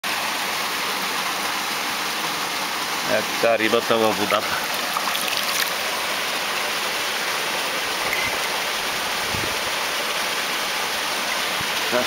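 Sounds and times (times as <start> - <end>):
stream water running over rocks: 0.0 - 12.0.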